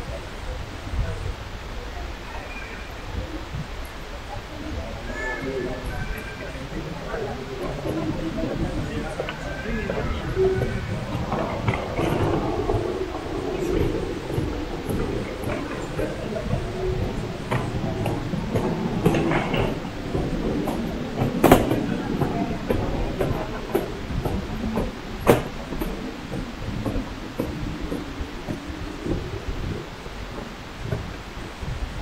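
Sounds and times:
murmur of voices: 0:00.0 - 0:32.0
footsteps: 0:03.2 - 0:32.0
suitcase wheels rolling on stone: 0:05.7 - 0:32.0.

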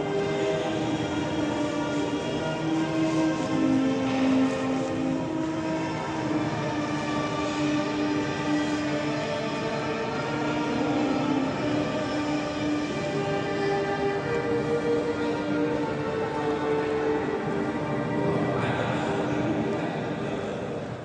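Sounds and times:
wind instrument holding long notes: 0:00.0 - 0:21.0.

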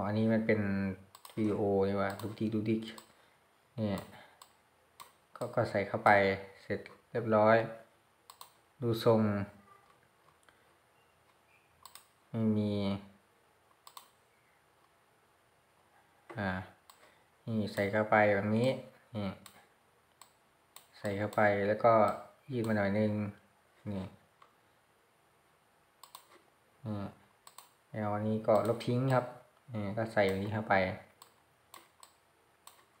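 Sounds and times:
person speaking: 0:00.0 - 0:04.6, 0:05.4 - 0:07.9, 0:08.8 - 0:10.6, 0:11.9 - 0:13.2, 0:16.2 - 0:19.7, 0:20.8 - 0:24.3, 0:26.3 - 0:31.3
computer mouse clicks: 0:01.1 - 0:03.2, 0:04.0 - 0:05.6, 0:08.2 - 0:08.6, 0:11.2 - 0:12.2, 0:13.7 - 0:14.2, 0:16.3 - 0:18.0, 0:19.4 - 0:22.8, 0:26.0 - 0:26.5, 0:27.4 - 0:27.8, 0:28.4 - 0:33.0.

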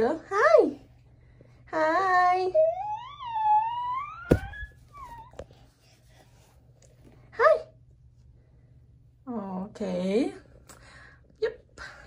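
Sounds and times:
sharp knock: 0:04.3 - 0:04.7
short falling squeak: 0:04.3 - 0:05.4.

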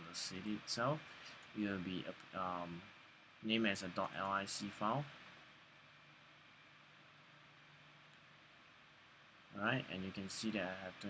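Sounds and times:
weak low hum: 0:00.0 - 0:11.0.

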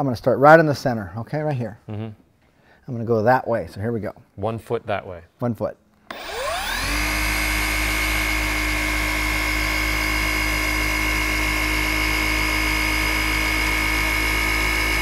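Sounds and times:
orbital polisher motor running: 0:06.1 - 0:15.0.

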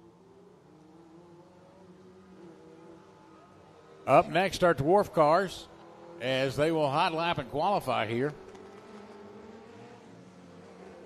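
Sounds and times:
faint race car engine: 0:00.0 - 0:11.0.

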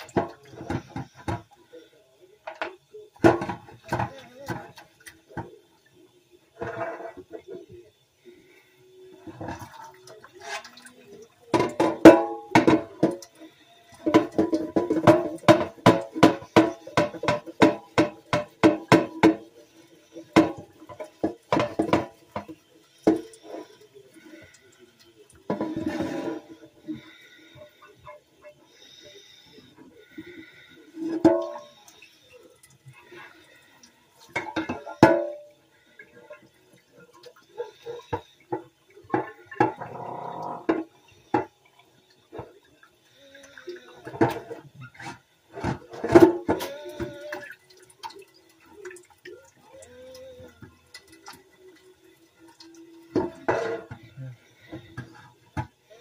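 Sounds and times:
scrubbing dishes: 0:00.0 - 0:56.0
tap water running: 0:00.0 - 0:56.0
dishes clinking: 0:09.2 - 0:19.6, 0:20.2 - 0:23.7, 0:31.0 - 0:32.1, 0:34.2 - 0:36.1, 0:44.0 - 0:55.8.

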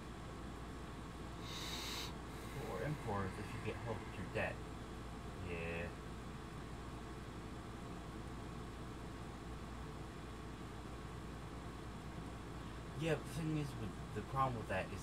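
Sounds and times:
low background hum and hiss: 0:00.0 - 0:15.0.

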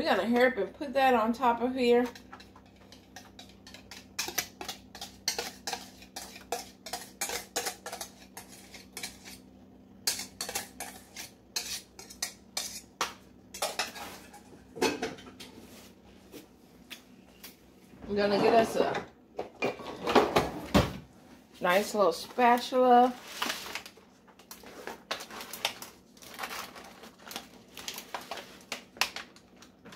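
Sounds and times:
utensil scraping metal bowl: 0:02.0 - 0:09.4, 0:10.0 - 0:13.0.

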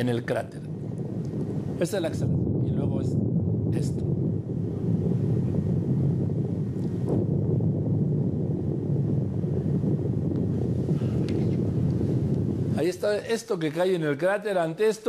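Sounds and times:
wind buffeting microphone: 0:00.0 - 0:14.4.

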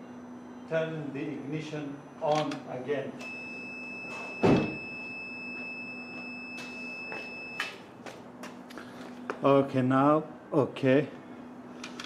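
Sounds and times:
electrics humming: 0:00.0 - 0:12.0
single thump: 0:04.4 - 0:04.8.

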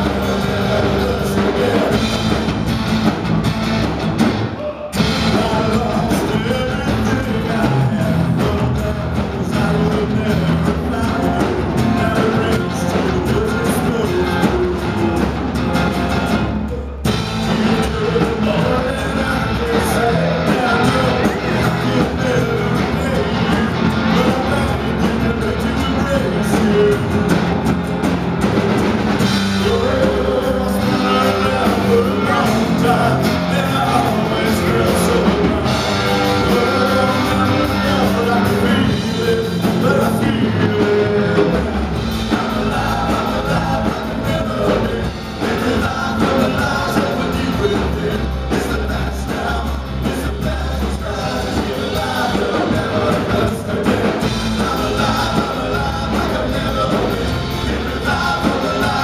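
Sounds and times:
person singing: 0:00.0 - 0:02.4, 0:29.4 - 0:59.0
drum kit beating: 0:00.0 - 0:59.0
electric and acoustic guitars: 0:00.0 - 0:59.0
live rock band playing: 0:00.0 - 0:59.0.

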